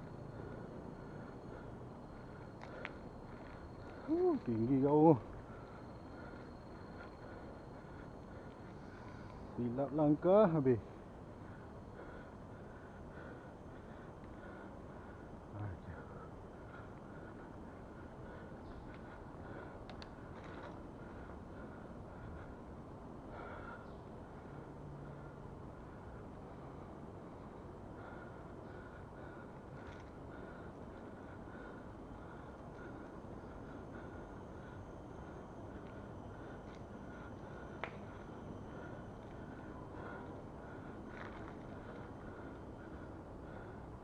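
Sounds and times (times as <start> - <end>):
bicycle rolling on concrete: 0.1 - 15.3, 15.9 - 43.8.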